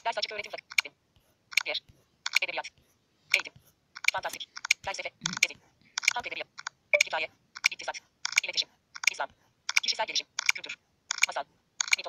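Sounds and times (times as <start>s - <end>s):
fast synthetic voice: 4.2s - 5.6s.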